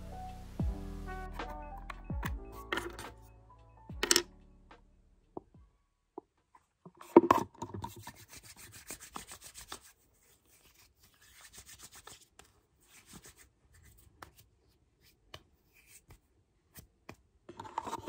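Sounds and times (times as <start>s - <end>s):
hands rubbing together: 8.0s - 16.3s.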